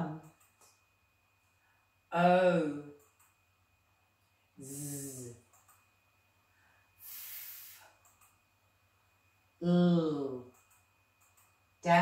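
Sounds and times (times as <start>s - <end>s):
woman making breathy hiss: 7.0s - 8.0s.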